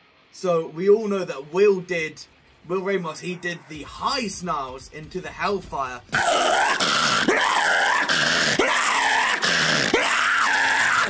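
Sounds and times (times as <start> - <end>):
harsh snarled vocals: 6.1 - 11.0.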